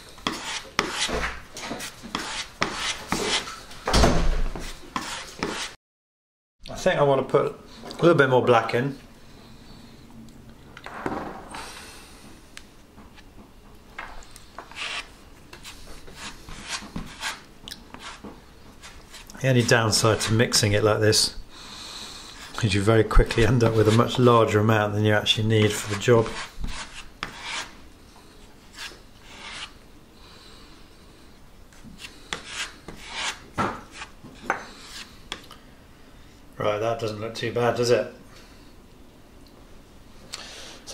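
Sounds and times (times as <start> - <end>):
knife scraping and squishing paste: 0.1 - 3.5, 4.6 - 5.8, 14.2 - 20.6, 22.3 - 24.2, 25.5 - 27.8, 28.6 - 29.8, 31.8 - 35.6
filling knife scraping on wood: 14.7 - 18.2.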